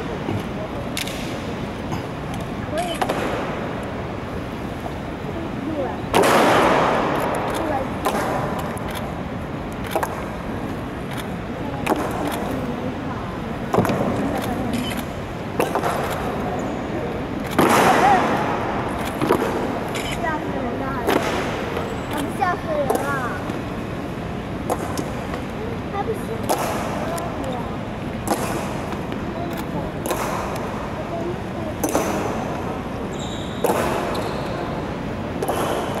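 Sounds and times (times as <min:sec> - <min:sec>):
low crowd chatter: 0:00.0 - 0:36.0.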